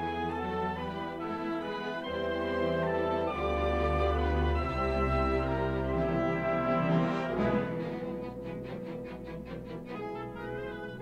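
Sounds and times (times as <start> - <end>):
orchestra playing ballet music: 0.0 - 11.0.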